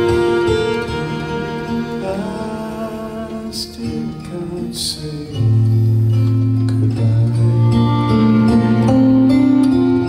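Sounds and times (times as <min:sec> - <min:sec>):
acoustic guitars playing chords: 0:00.0 - 0:10.0.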